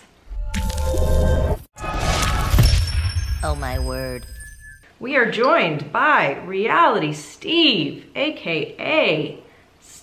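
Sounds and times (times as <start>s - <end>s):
shattering crash: 1.8s - 4.6s.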